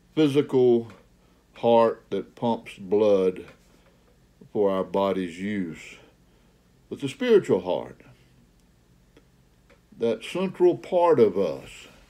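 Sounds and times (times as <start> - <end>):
faint low hum: 0.0 - 12.0
faint irregular clicks: 8.5 - 9.9.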